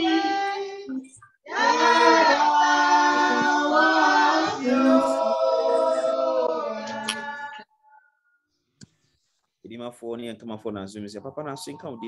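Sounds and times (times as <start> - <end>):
person speaking: 10.4 - 12.0.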